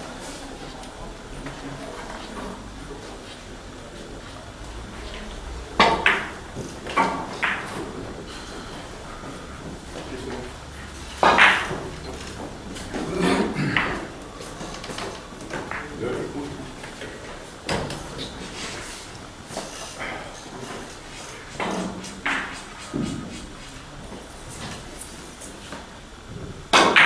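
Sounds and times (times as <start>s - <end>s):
low background voices: 0.0s - 26.7s.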